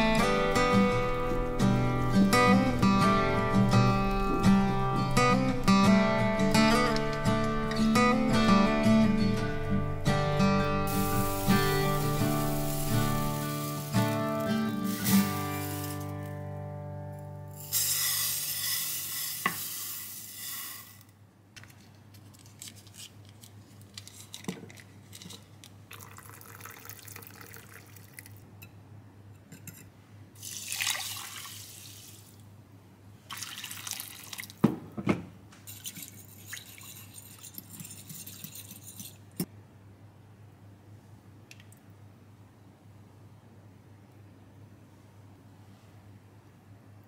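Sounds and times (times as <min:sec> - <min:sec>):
broth pouring: 0:10.9 - 0:16.3, 0:25.9 - 0:28.4, 0:30.4 - 0:32.4, 0:33.3 - 0:34.6
dry rice pouring into glass dish: 0:10.9 - 0:16.3, 0:17.6 - 0:21.0
splashing liquid: 0:30.4 - 0:32.3, 0:33.3 - 0:34.6.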